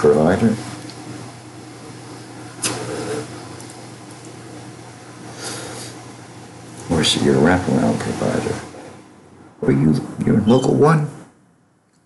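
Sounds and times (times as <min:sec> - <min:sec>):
low hum and faint hiss: 0:00.0 - 0:12.0
short sharp hiss: 0:02.6 - 0:03.3.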